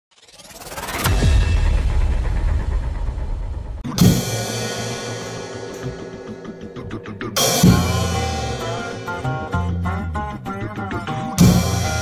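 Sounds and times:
cymbal crash: 0.6s - 9.8s
drum kit playing: 1.1s - 12.0s.

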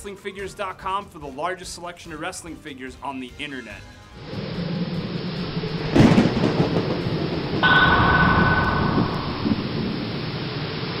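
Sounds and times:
thunder rumble and rain hiss: 4.4s - 7.6s
bright sustained tone: 7.6s - 10.2s
heavy boom: 7.6s - 10.2s.

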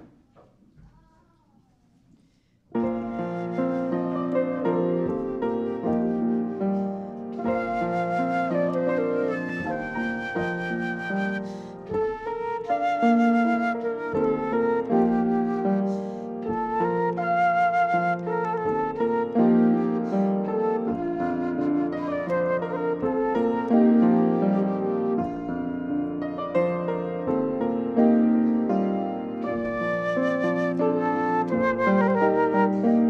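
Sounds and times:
flute melody with vibrato: 2.8s - 33.0s
lower accompaniment: 2.8s - 33.0s.

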